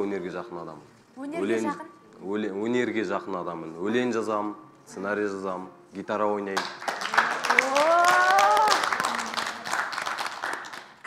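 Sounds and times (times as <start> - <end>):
crowd applauding: 6.6 - 11.0.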